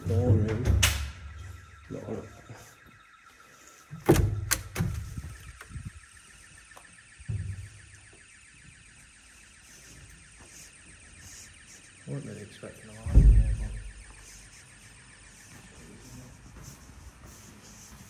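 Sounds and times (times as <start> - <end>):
intruder alarm pulsing high tone: 0.0 - 18.0.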